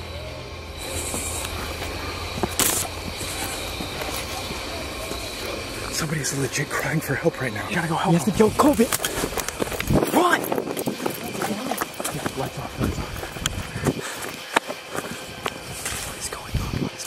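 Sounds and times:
low voices: 0:00.0 - 0:17.0
hurried footsteps on dirt trail: 0:00.8 - 0:16.9.

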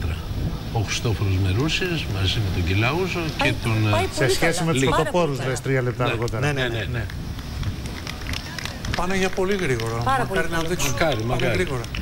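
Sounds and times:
low rumble of street noise: 0:00.0 - 0:12.0.

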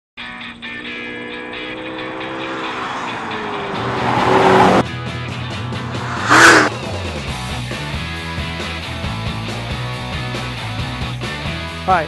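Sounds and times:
music: 0:00.2 - 0:12.0
sports car passing at speed: 0:00.5 - 0:06.9.

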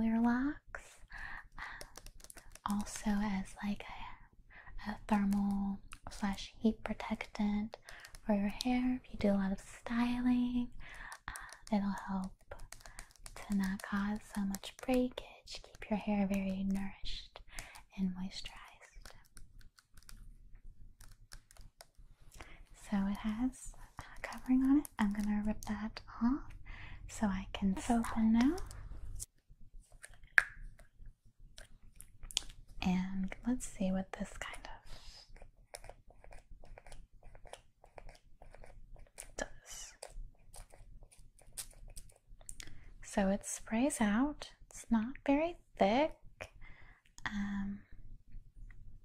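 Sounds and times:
fingernails clicking on plastic bottle: 0:01.7 - 0:02.9, 0:07.8 - 0:08.7, 0:10.9 - 0:15.8.

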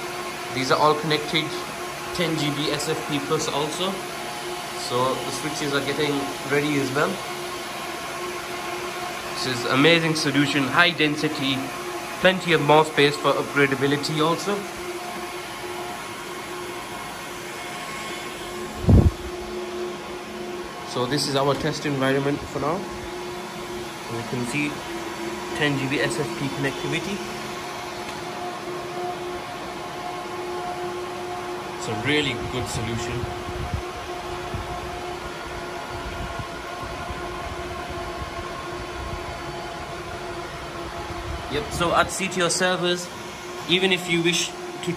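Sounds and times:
server cooling fans whirring: 0:00.0 - 0:44.9.

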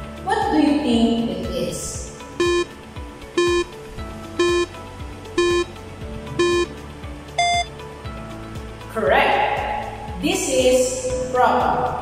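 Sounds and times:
background music: 0:00.0 - 0:12.0
electronic beeps: 0:02.4 - 0:02.7, 0:03.4 - 0:03.7, 0:04.4 - 0:04.8, 0:05.4 - 0:05.7, 0:06.4 - 0:06.8, 0:07.4 - 0:07.7
higher-pitched beep: 0:02.4 - 0:02.7, 0:03.4 - 0:03.7, 0:04.4 - 0:04.7, 0:05.4 - 0:05.7, 0:06.4 - 0:06.7, 0:07.4 - 0:07.7.

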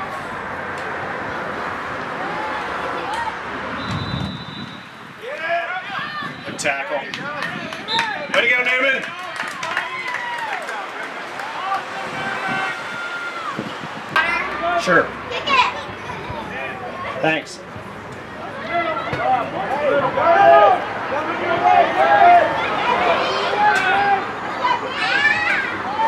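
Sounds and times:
crowd shouting and cheering: 0:01.9 - 0:26.0.

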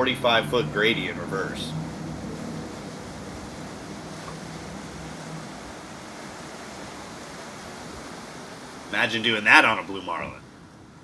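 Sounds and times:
outboard engines droning: 0:00.0 - 0:11.0
water noise: 0:00.0 - 0:11.0
wind: 0:00.0 - 0:11.0.

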